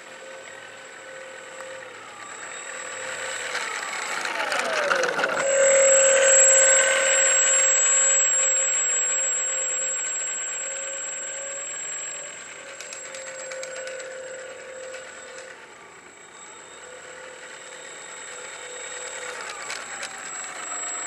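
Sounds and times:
model plane motor whine: 0.0 - 21.0.

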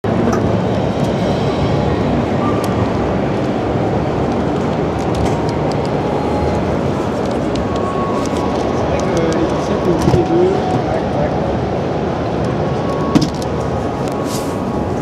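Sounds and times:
distant voices: 0.1 - 15.0.

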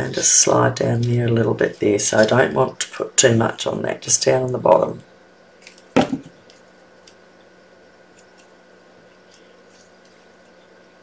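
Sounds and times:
paper handling noises: 0.0 - 2.9, 8.1 - 10.7
low electrical hum: 0.0 - 11.0.

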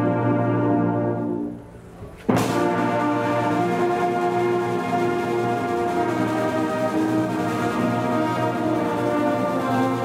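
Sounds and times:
brass and wind band chords: 0.0 - 10.0.

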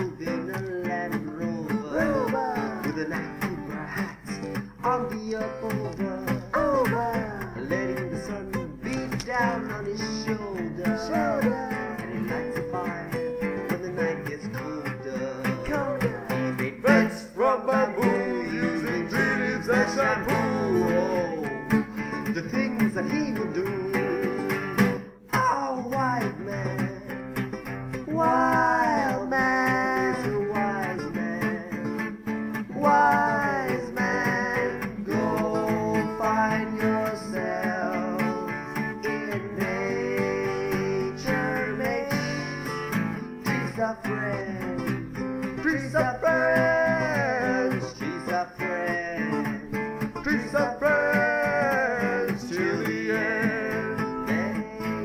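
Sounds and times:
person singing: 0.0 - 55.0
strummed acoustic guitar: 0.0 - 55.0.

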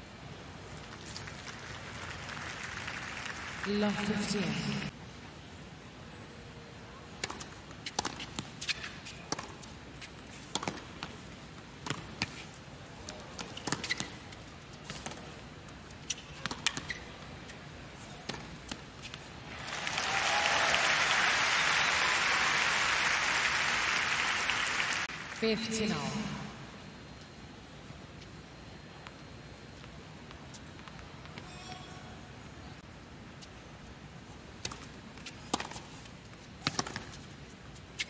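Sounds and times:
crowd applause: 1.4 - 3.7, 19.5 - 25.3
tennis ball struck by rackets: 10.4 - 11.1, 36.6 - 37.2.

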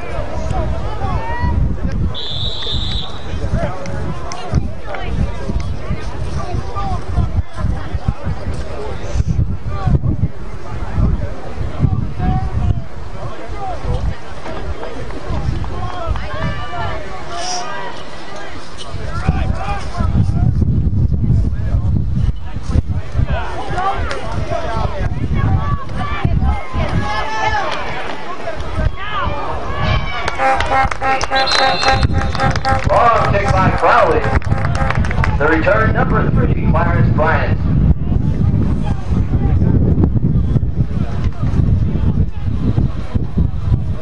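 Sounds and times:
people shouting and calling out: 0.0 - 8.4, 14.9 - 20.3, 23.1 - 38.2
wind rumble on microphone: 0.0 - 17.3, 18.8 - 44.0
people shouting: 25.5 - 28.1.

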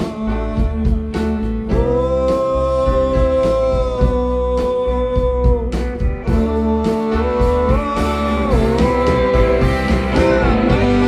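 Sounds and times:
held bending melody line: 0.0 - 11.0
live band music: 0.0 - 11.0.

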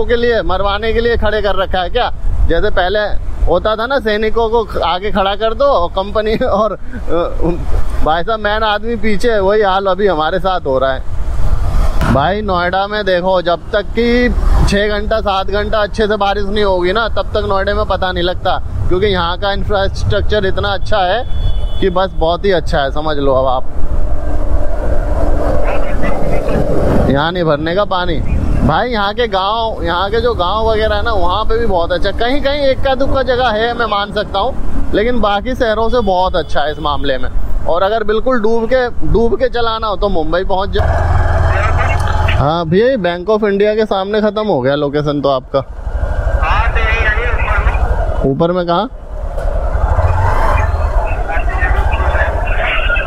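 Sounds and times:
motorcycle engine and road noise: 0.0 - 53.0
wind rumbling on microphone: 23.6 - 28.8.

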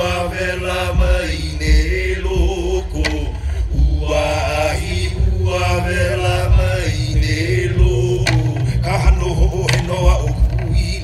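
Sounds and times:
heavy low rumble: 0.0 - 11.0
sustained chanted vocals: 0.0 - 11.0.

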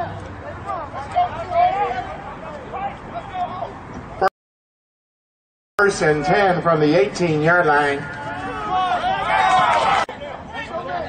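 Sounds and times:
background chatter: 0.0 - 4.1, 7.9 - 11.0.

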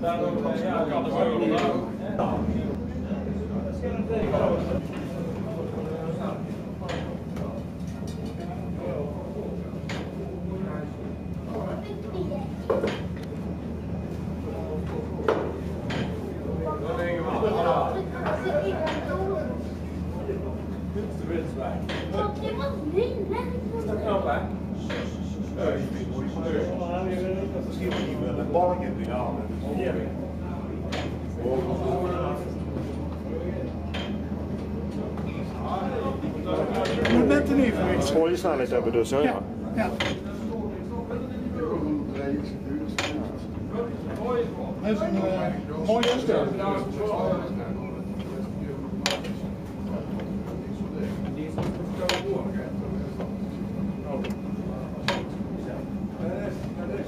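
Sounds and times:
faint murmur of voices: 0.0 - 57.0
mill machinery humming: 0.0 - 57.0.

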